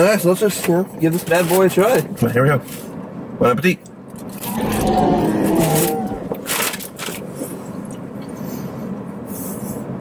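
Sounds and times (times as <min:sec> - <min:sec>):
man humming mmm: 0:04.6 - 0:06.4.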